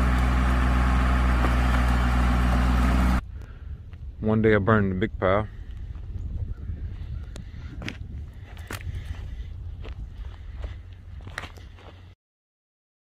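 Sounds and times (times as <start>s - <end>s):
low outdoor rumble: 0.0s - 6.0s, 8.1s - 12.2s.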